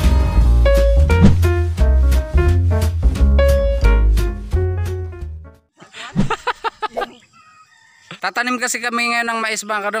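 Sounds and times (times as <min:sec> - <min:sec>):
man laughing: 0:05.8 - 0:07.7.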